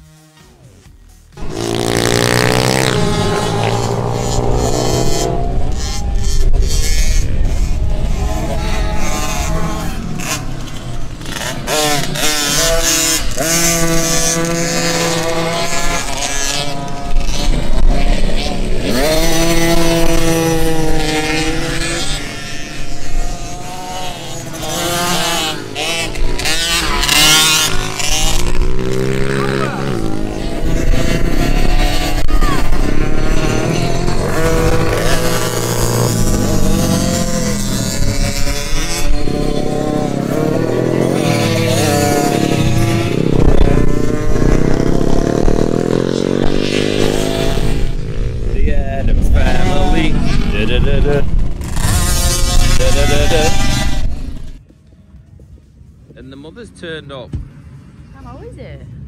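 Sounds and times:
motocross bike engines revving: 0:00.0 - 0:54.7.

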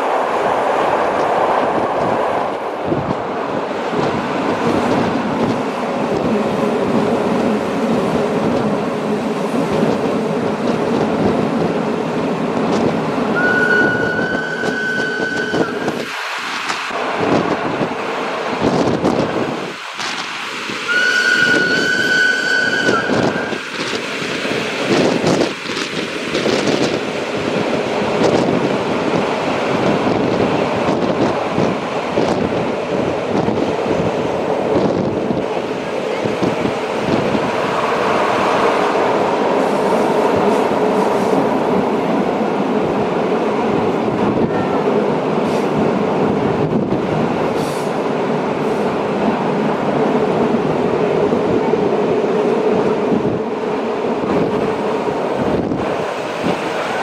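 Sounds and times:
train wheels running on rails: 0:00.0 - 0:57.0
wind: 0:00.0 - 0:57.0.

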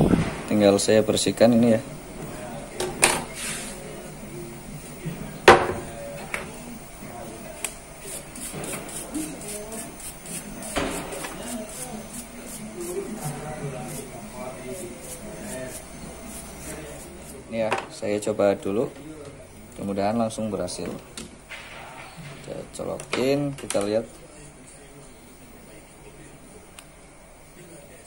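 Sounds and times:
stiff brush scrubbing board: 0:08.0 - 0:17.4.

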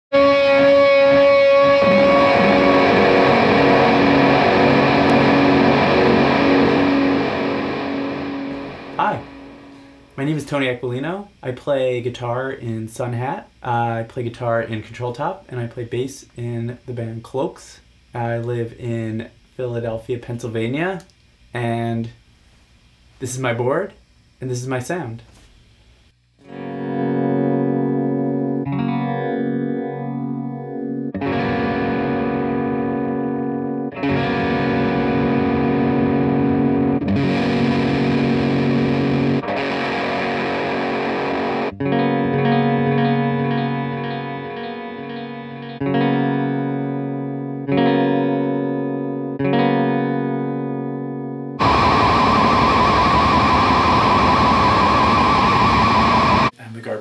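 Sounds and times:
distorted electric guitar chords: 0:00.1 - 0:10.4, 0:26.4 - 0:56.5.

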